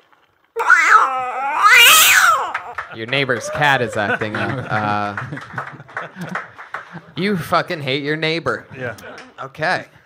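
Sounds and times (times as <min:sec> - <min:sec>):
cat yowling: 0:00.6 - 0:02.8.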